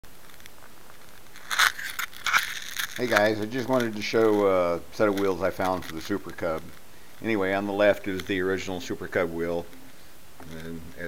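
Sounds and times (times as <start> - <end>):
faint steady hiss: 0.0 - 11.0
handheld camera rustling: 0.2 - 9.6.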